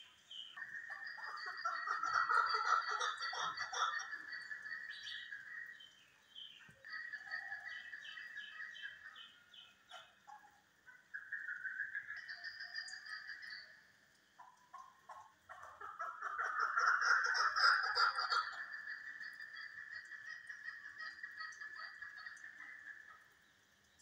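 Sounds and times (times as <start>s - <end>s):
partridges calling: 0.0s - 13.7s, 14.4s - 23.3s.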